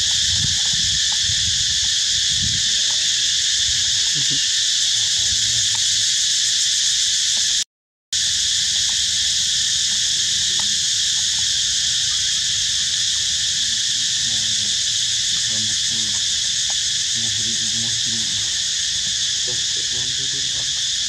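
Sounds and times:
insects shrilling: 0.0s - 7.6s, 8.2s - 21.0s.

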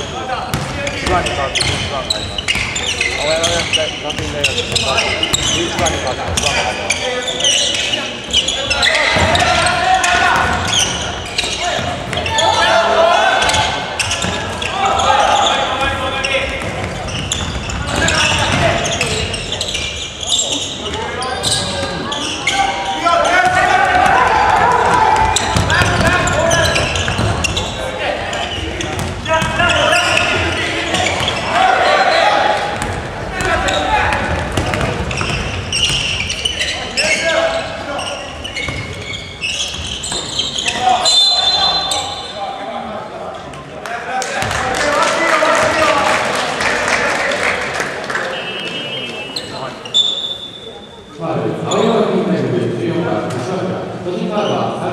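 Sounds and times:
people shouting: 12.2s - 13.8s, 22.5s - 26.8s, 29.7s - 32.8s
basketball bouncing on wooden floor: 34.2s - 36.1s
referee whistle: 40.4s - 42.4s, 48.3s - 50.8s.

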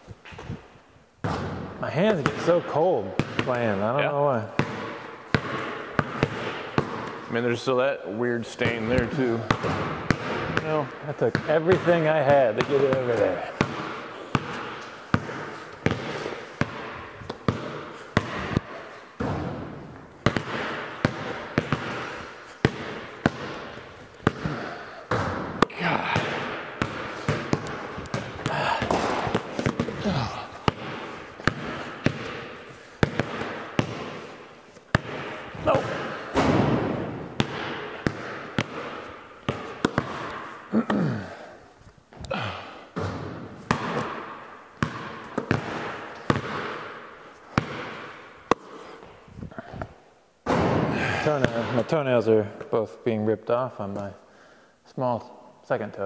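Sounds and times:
basketballs dribbled on concrete: 1.2s - 7.7s, 8.5s - 41.4s, 42.1s - 49.1s, 50.4s - 52.0s
men's voices: 7.3s - 9.6s, 10.4s - 13.6s, 24.3s - 26.6s, 28.0s - 31.3s, 35.5s - 36.4s.

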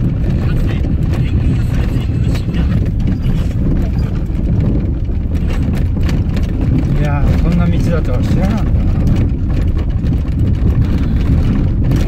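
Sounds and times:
stones knocking under car: 0.0s - 12.0s
tyres and engine rumbling: 0.0s - 12.0s.

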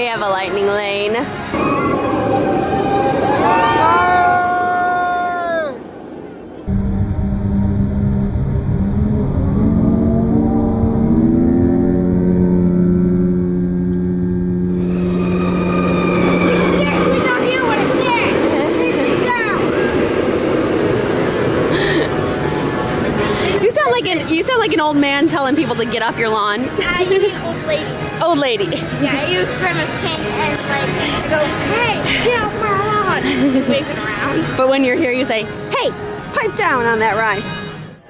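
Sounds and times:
train rushing on track: 0.0s - 6.7s, 14.6s - 38.0s
roller coaster launch whine: 1.4s - 25.0s.

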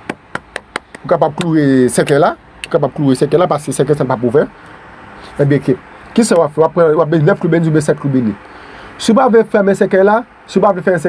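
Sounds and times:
light sharp taps: 0.1s - 2.8s
man speaking: 1.0s - 4.6s, 5.2s - 8.4s, 9.0s - 11.0s.

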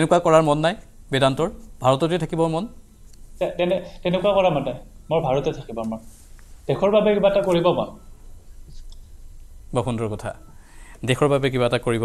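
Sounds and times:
man speaking: 0.0s - 8.0s, 9.7s - 12.0s.

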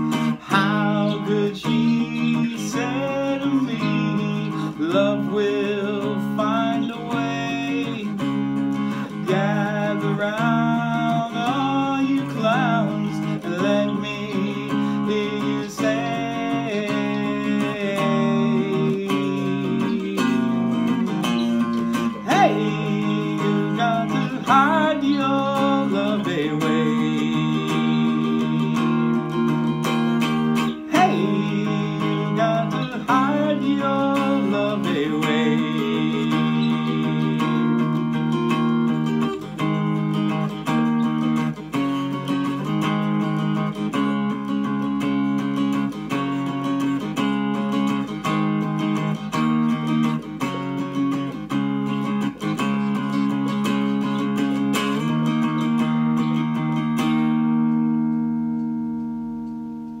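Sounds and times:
person singing: 0.0s - 57.7s
guitar strumming chords: 0.0s - 60.0s.

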